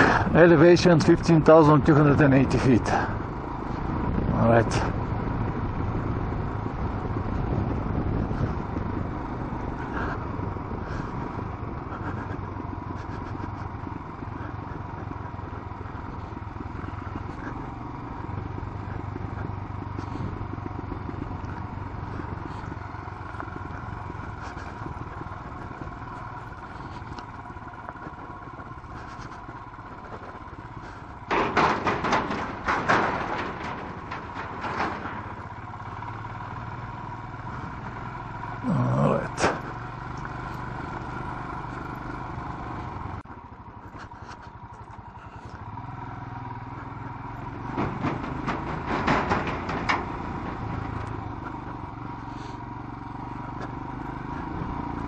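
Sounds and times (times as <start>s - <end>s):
loud rough rattling: 0.0s - 55.0s
motorcycle engine running: 0.0s - 55.0s
road and wind noise: 0.0s - 55.0s.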